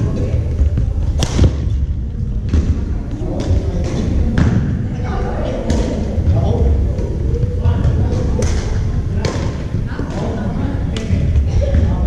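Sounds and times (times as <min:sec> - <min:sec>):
thuds: 0:00.6 - 0:04.7.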